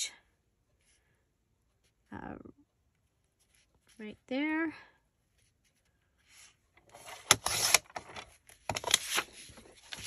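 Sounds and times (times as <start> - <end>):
paper trimmer click and scrape: 7.0 - 7.9.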